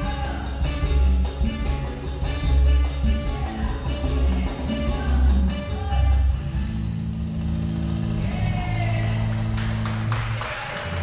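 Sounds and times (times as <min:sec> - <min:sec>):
dance music over sound system: 0:00.0 - 0:11.0.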